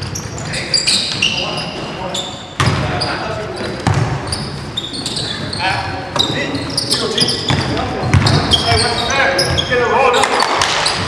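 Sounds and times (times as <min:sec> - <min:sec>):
sneaker squeaks: 0:00.0 - 0:11.0
basketball bouncing on hardwood: 0:03.8 - 0:04.2, 0:07.5 - 0:08.9.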